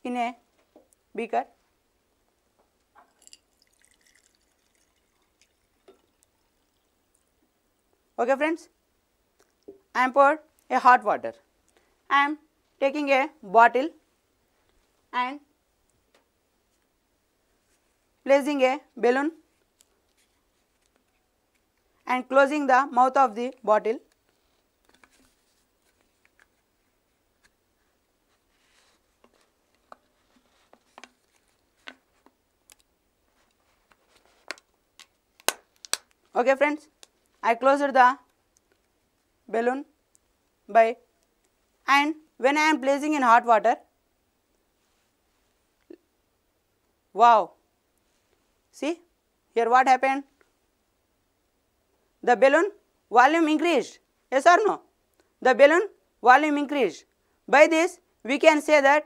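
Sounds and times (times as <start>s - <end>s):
water poured into glass: 3.1s - 7.2s
balloon handling clicks and rubs: 33.5s - 36.3s.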